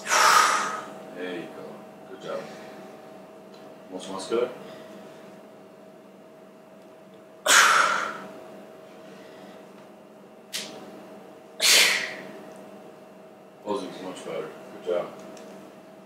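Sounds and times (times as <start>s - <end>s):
man exhaling forcefully: 0.0s - 0.9s, 7.5s - 8.2s, 11.6s - 12.2s
faint steady hum: 0.0s - 16.0s.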